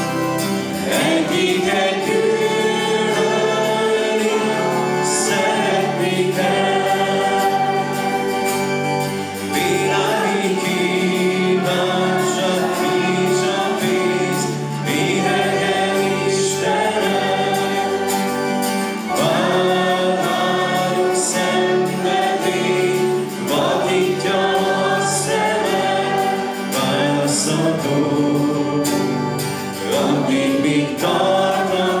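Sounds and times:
acoustic guitar: 0:00.0 - 0:32.0
congregation singing a hymn: 0:00.0 - 0:32.0.

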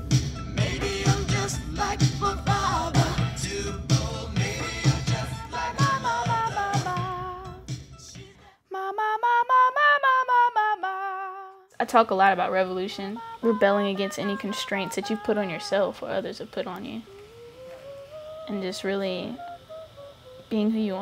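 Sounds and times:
music with sung vocals: 0:00.0 - 0:10.9, 0:11.5 - 0:21.0
woman singing unaccompanied: 0:08.6 - 0:21.0.

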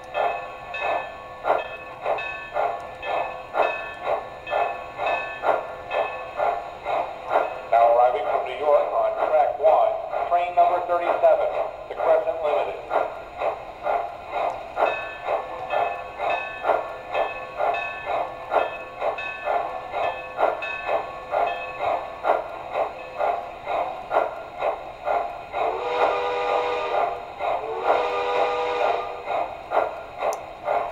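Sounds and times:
steam locomotive chuffing: 0:00.0 - 0:30.9
steam whistle: 0:25.6 - 0:29.2.

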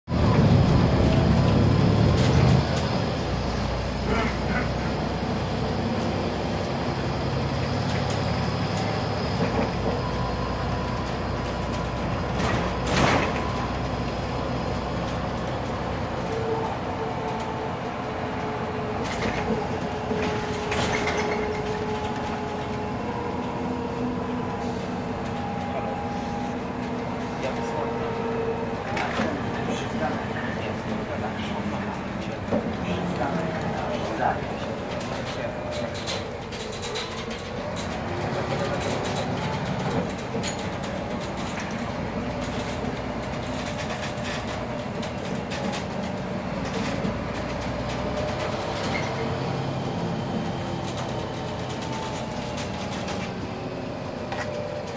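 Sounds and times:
bus engine running: 0:00.0 - 0:54.9
road noise: 0:00.0 - 0:54.9.

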